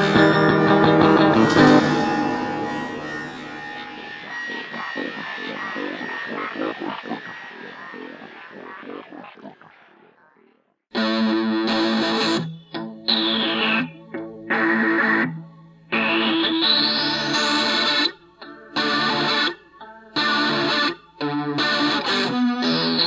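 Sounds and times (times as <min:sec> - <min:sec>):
high sweeping gliding tones: 0:00.0 - 0:10.1
distorted electric guitar chords: 0:00.0 - 0:10.2, 0:10.9 - 0:23.0.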